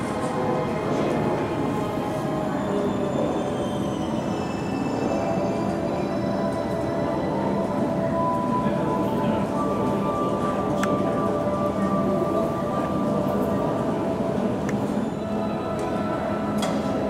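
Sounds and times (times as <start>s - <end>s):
dense background din: 0.0s - 17.0s
music: 3.4s - 17.0s.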